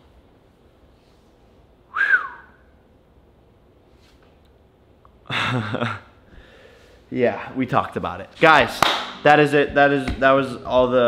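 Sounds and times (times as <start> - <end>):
short whistle: 1.9 - 2.7.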